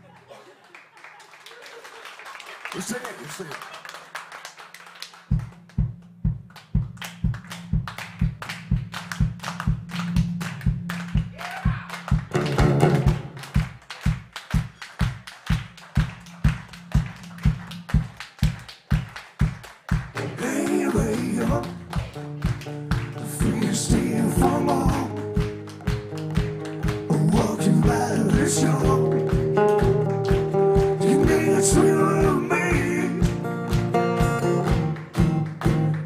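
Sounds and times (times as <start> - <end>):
deep thudding drum beat: 5.3 - 35.9.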